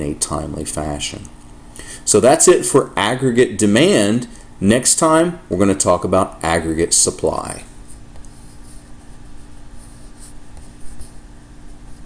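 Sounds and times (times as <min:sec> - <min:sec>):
low electrical hum and hiss: 0:00.0 - 0:12.0
faint rubbing sounds: 0:07.7 - 0:12.0.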